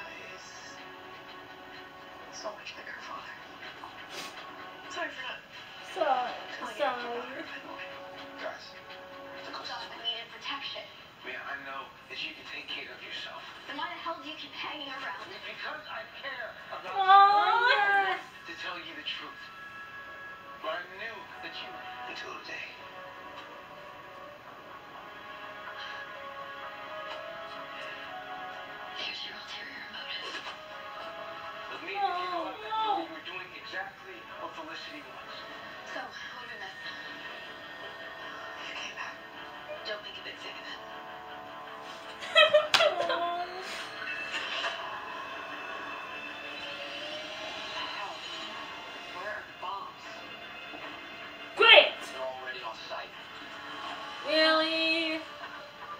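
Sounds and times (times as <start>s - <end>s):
faint dialogue: 0.0s - 42.2s, 42.8s - 55.7s
background music: 0.0s - 55.9s
low background score drone: 44.5s - 49.6s.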